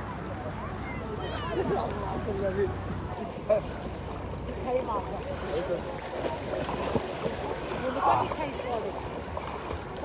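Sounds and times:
people chattering: 0.0s - 9.2s
small waves lapping: 0.0s - 10.0s.

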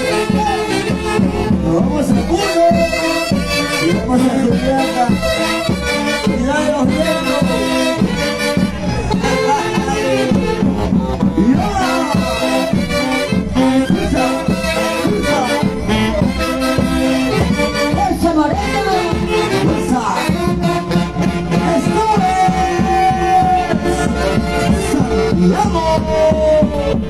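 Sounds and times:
live dance music with saxophones: 0.0s - 27.0s.

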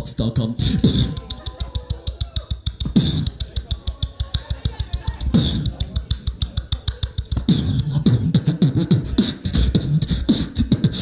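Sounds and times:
beatbox hi-hat clicks: 0.0s - 11.0s
beatbox kick thumps: 0.0s - 11.0s.

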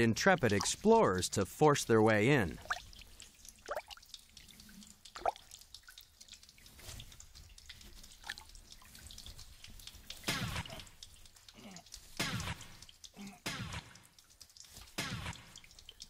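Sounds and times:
water dripping in a cave: 0.0s - 16.0s.

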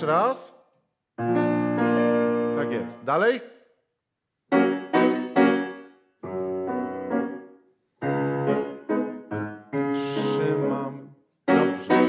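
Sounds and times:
grand piano chords: 1.2s - 3.2s, 4.5s - 12.0s.

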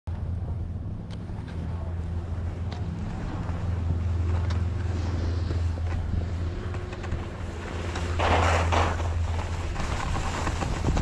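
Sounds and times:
wind rumbling on microphone: 0.1s - 11.0s
skis sliding over snow: 2.7s - 11.0s.

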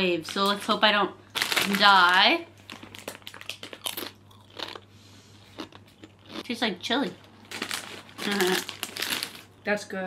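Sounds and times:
chips crunching being eaten: 1.4s - 6.6s, 7.5s - 9.5s.

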